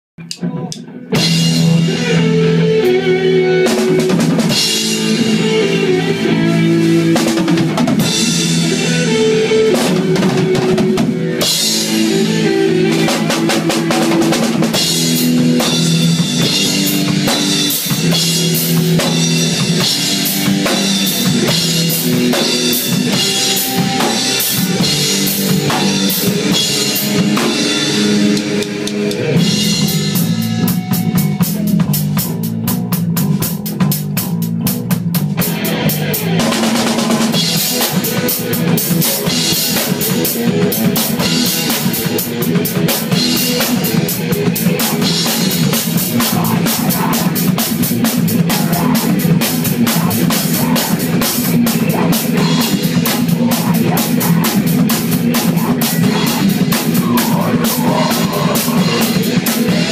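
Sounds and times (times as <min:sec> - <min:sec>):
bass guitar riffs: 0:00.2 - 0:59.9
drum kit: 0:00.2 - 0:59.9
electric guitar riffs: 0:00.2 - 0:59.9.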